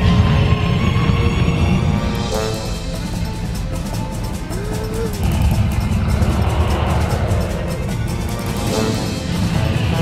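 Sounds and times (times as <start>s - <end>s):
film score music: 0.0s - 10.0s
deep rumbling sound effect: 4.5s - 8.7s.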